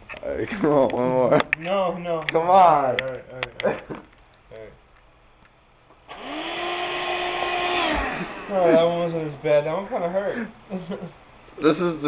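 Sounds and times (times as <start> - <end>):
vacuum nozzle sucking: 6.1 - 8.6
vacuum cleaner motor whine: 6.1 - 8.8.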